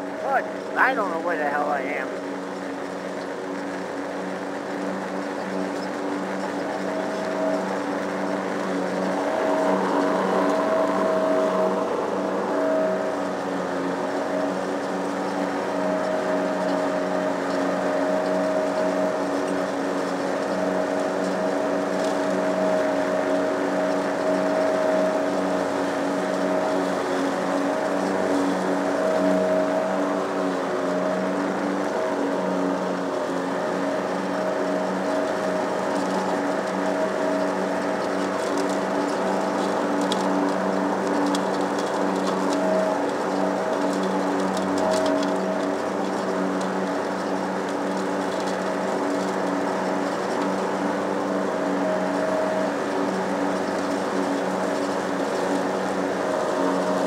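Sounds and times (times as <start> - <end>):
lawn mower engine running: 0.0 - 57.0.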